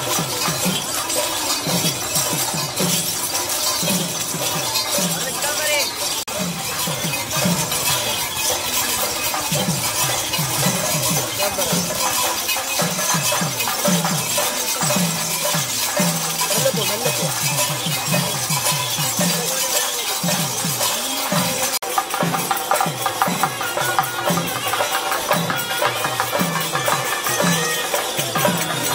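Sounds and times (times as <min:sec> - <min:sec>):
fast drum beat: 0:00.0 - 0:28.9
metal cymbals clattering: 0:00.0 - 0:28.9.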